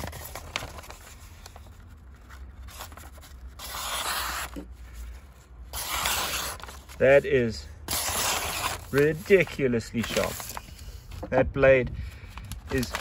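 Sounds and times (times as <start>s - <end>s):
paper rustling: 0.0s - 7.2s, 7.9s - 11.4s, 12.0s - 13.0s
knife slicing paper: 2.7s - 4.6s, 5.7s - 7.0s, 7.9s - 10.6s.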